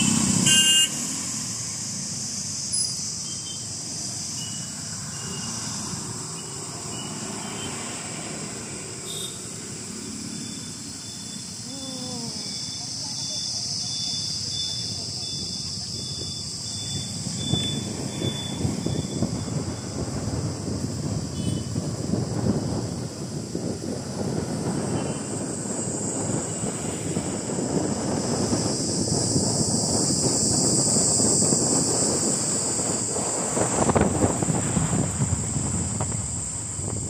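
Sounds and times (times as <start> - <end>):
low road and engine rumble: 0.0 - 37.0
wind buffeting microphone: 15.0 - 37.0.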